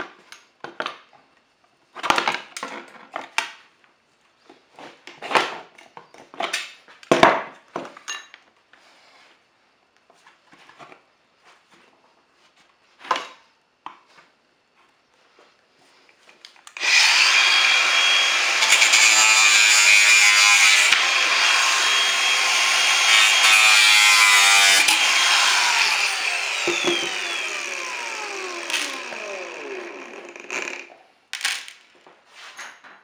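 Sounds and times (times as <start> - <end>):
angle grinder cutting metal: 16.7 - 30.9.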